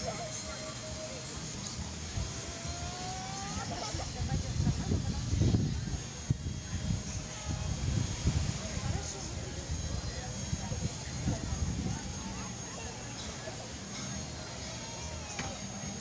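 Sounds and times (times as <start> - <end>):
faint indistinct voices: 0.0 - 16.0
wind buffeting microphone: 2.1 - 12.4.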